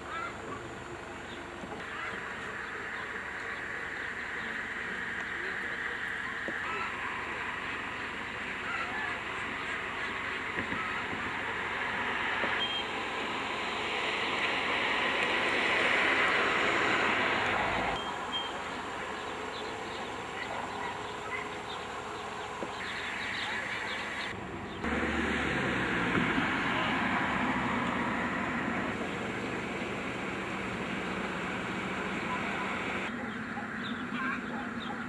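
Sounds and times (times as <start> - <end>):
roadside ambient noise: 0.0 - 35.0
background voices: 26.2 - 33.2.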